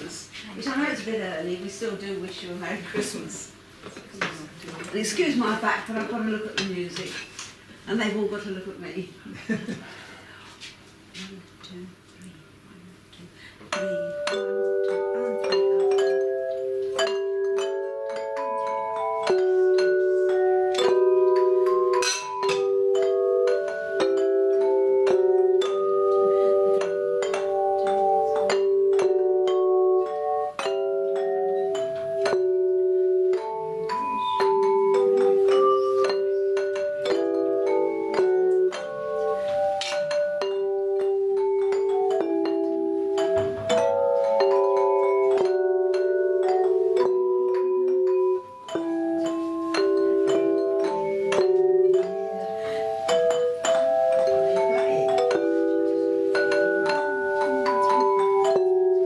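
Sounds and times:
bell plates playing chords: 0:13.7 - 0:59.0.

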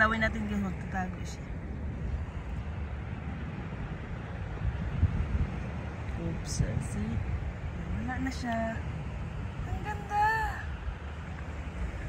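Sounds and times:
shallow seawater rumbling: 0:00.0 - 0:12.0
wind on microphone: 0:00.0 - 0:12.0.

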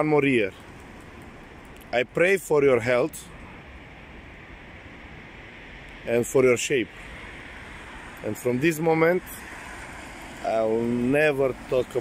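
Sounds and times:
street background noise: 0:00.0 - 0:12.0.

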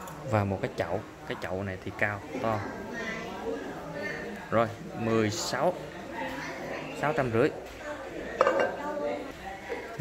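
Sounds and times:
ceramic basin clinking on tiles: 0:08.4 - 0:08.8.

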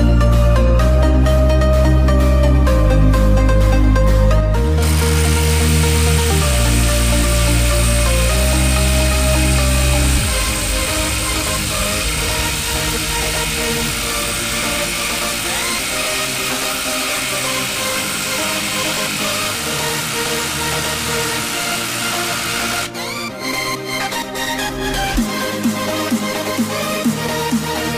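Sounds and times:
electronic dance music: 0:04.6 - 0:27.9
impact driver hammering: 0:04.8 - 0:22.9.

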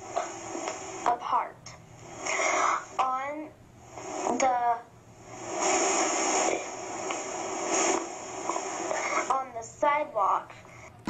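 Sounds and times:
speaker hiss: 0:00.0 - 0:11.0.

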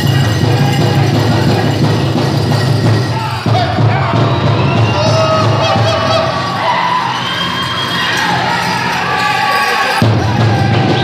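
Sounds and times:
drum beating: 0:00.0 - 0:11.0
crowd cheering and whooping: 0:03.1 - 0:11.0.

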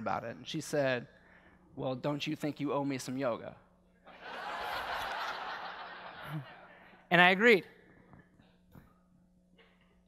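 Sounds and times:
audience laughing: 0:04.1 - 0:06.8.

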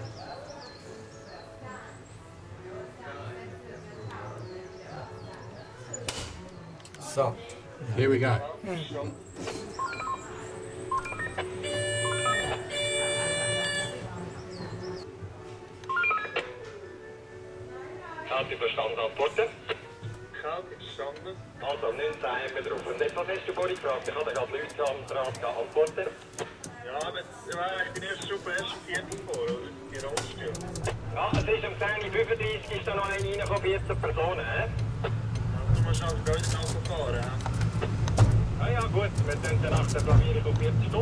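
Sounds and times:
people talking indistinctly: 0:00.0 - 0:15.4, 0:17.4 - 0:41.0.

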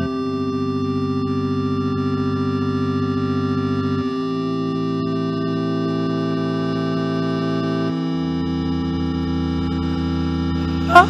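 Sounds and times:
pulsing low synth note: 0:00.0 - 0:11.0
sustained synthesizer chord: 0:00.0 - 0:11.0.

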